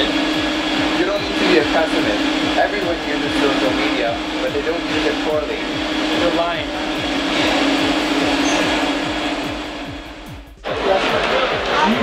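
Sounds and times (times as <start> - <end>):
music with quick bass-drum beat: 0.0 - 12.0
steady whirring noise: 0.0 - 12.0.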